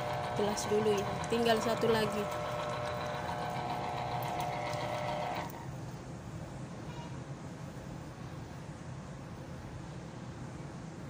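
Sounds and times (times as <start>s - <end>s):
electric juicer motor running: 0.0s - 5.7s.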